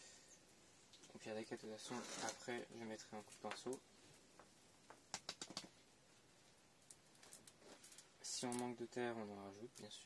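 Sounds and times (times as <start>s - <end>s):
soft clicks and rustles: 0.9s - 8.8s.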